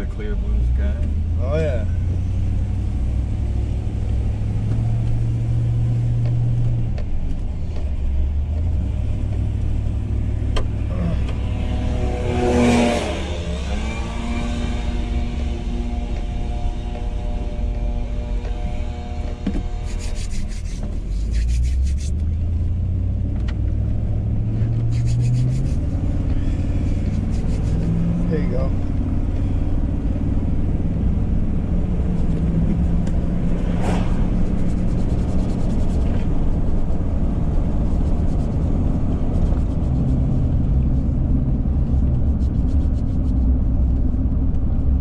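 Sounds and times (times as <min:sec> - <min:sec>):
engine and road rumble: 0:00.0 - 0:45.0
large truck passing: 0:08.0 - 0:21.1, 0:22.1 - 0:41.8.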